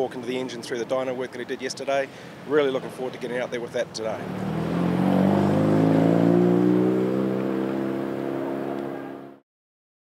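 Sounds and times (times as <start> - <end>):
rally car engine pulling away: 4.1 - 9.4.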